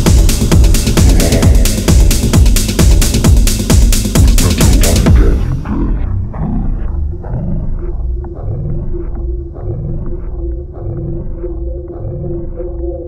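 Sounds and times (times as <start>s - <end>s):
pulsing low bass: 0.0s - 13.0s
steady synth drone: 0.0s - 13.0s.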